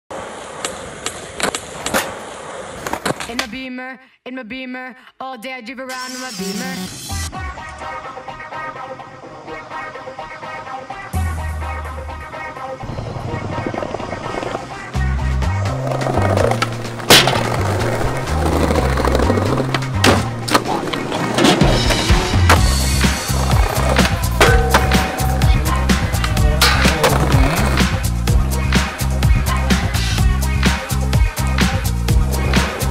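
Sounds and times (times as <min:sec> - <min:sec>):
skateboard wheels rolling: 0:00.1 - 0:03.4, 0:12.2 - 0:32.9
skateboard clacking on ground: 0:00.3 - 0:03.5, 0:15.8 - 0:27.9
hip-hop music with bass beat: 0:05.8 - 0:09.0, 0:21.4 - 0:32.9.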